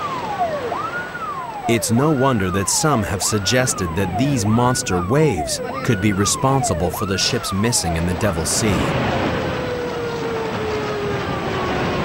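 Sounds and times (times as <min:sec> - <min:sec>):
seawater rushing: 0:00.0 - 0:12.0.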